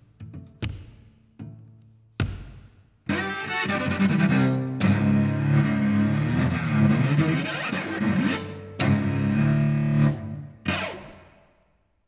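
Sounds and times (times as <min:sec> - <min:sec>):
bowed cello low notes: 0:03.1 - 0:10.8.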